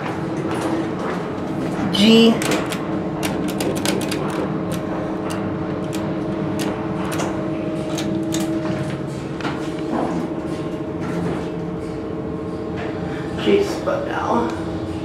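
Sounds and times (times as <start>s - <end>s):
elevator hum: 0.0s - 15.0s.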